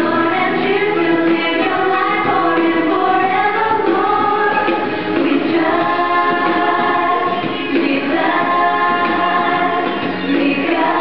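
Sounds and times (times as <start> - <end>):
group singing worship song: 0.0 - 11.0.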